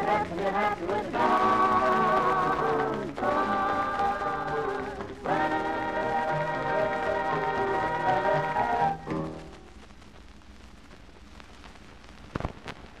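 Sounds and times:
dance band music: 0:00.0 - 0:09.7
record surface hiss and crackle: 0:00.0 - 0:13.0.

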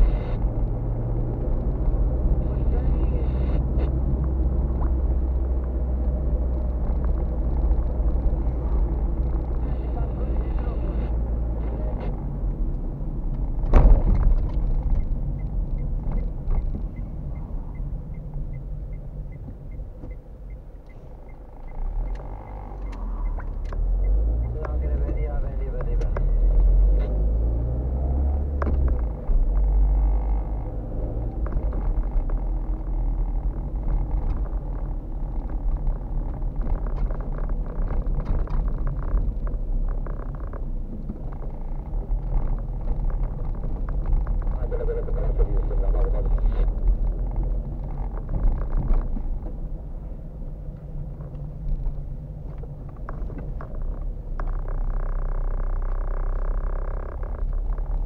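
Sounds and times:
car engine rumble: 0:00.0 - 0:58.0
road noise: 0:00.0 - 0:58.0
light steady ticking: 0:14.4 - 0:26.7.

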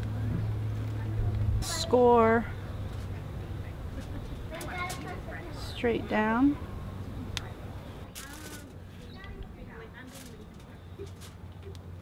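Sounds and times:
scratchy rustles: 0:08.1 - 0:09.3, 0:10.0 - 0:11.7.

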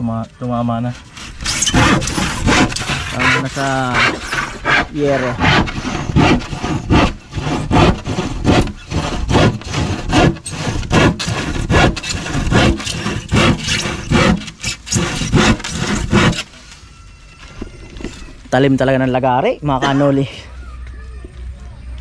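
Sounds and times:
hand saw cutting plywood: 0:01.0 - 0:16.6.

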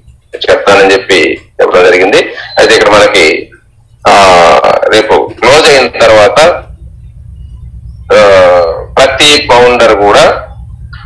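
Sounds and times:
person talking loudly: 0:00.4 - 0:06.6, 0:08.1 - 0:10.5.

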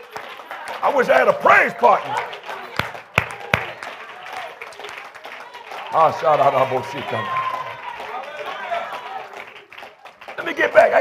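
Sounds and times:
sharp hand claps: 0:02.0 - 0:06.1, 0:07.3 - 0:11.0.

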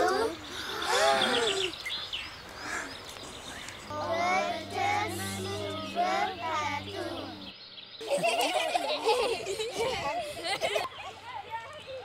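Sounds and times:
children talking and exclaiming: 0:00.0 - 0:01.8, 0:03.7 - 0:12.0
birds chirping: 0:00.0 - 0:08.7
low steady musical note: 0:03.8 - 0:07.6.

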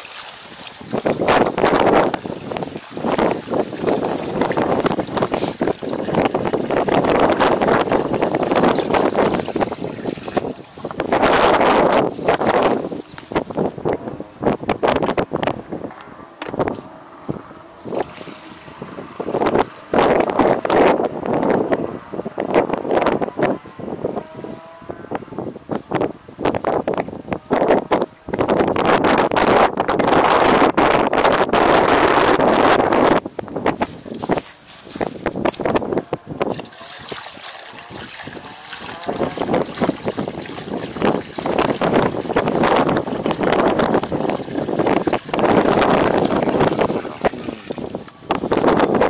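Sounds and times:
liquid pouring into plastic tank: 0:00.0 - 0:12.9, 0:17.8 - 0:19.9, 0:36.4 - 0:48.6
wind buffeting microphone: 0:00.0 - 0:49.0.

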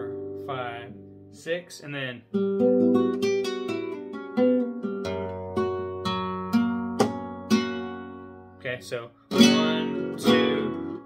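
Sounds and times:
guitar playing slow arpeggio: 0:00.0 - 0:01.4, 0:02.3 - 0:08.6, 0:09.2 - 0:11.0.

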